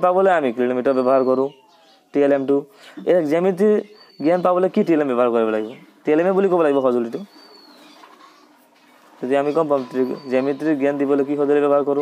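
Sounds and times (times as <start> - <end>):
man speaking: 0.0 - 7.3, 9.2 - 12.0
low background noise: 0.0 - 12.0.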